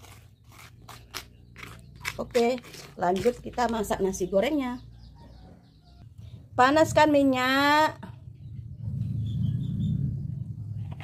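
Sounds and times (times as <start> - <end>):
spatula scraping stone mortar: 0.0 - 3.8.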